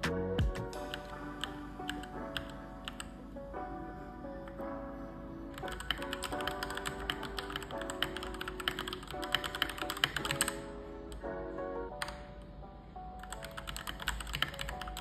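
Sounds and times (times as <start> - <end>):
background music: 0.0 - 15.0
fast mechanical keyboard typing: 0.8 - 3.1, 5.6 - 10.6, 13.2 - 15.0.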